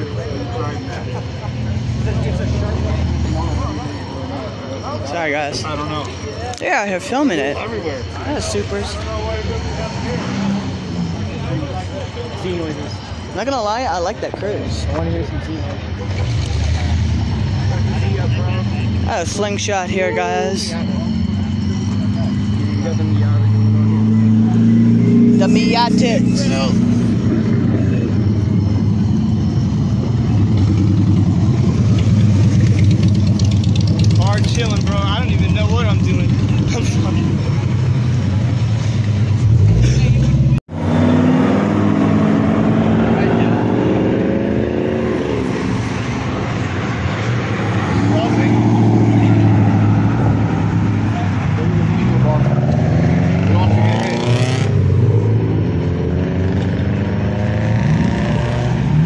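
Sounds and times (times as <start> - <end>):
car engines revving: 0.0 - 59.0
low engine drone: 7.1 - 59.0.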